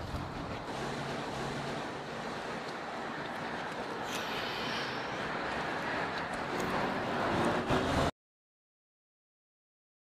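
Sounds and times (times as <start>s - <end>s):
street noise rush: 0.0s - 8.1s.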